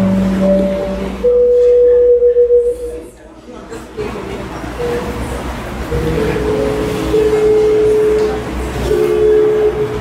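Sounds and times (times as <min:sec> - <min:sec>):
amplified instrument sustained notes: 0:00.0 - 0:03.1, 0:04.8 - 0:10.0
amplifier hum: 0:00.0 - 0:03.1.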